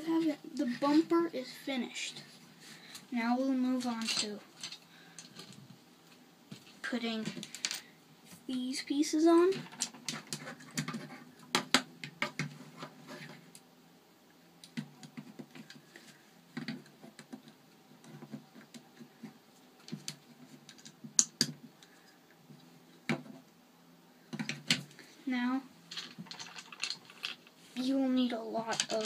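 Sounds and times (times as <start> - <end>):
plastic bricks clicking and clattering: 9.5 - 12.5, 25.9 - 27.5, 28.6 - 29.0.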